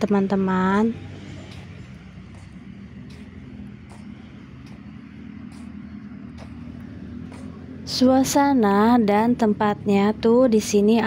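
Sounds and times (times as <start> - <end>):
distant road traffic rumble: 0.0 - 11.0.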